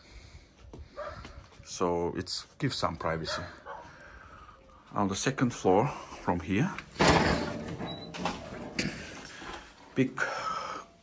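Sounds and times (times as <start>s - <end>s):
wooden door swinging open: 6.8s - 9.2s.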